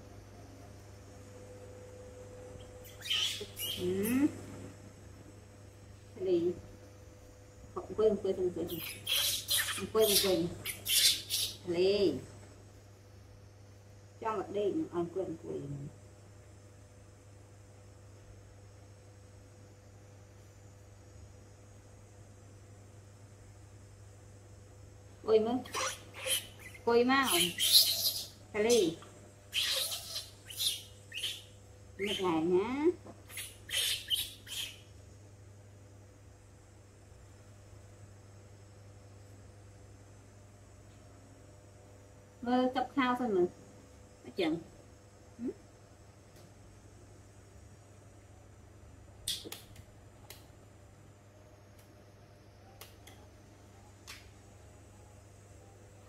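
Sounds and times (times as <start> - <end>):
baby macaque rising and falling call: 2.6 - 4.4, 8.7 - 11.7, 25.6 - 32.4, 33.2 - 34.9
baby macaque squeal: 2.8 - 4.3, 8.7 - 11.7, 25.6 - 32.4, 33.3 - 34.9.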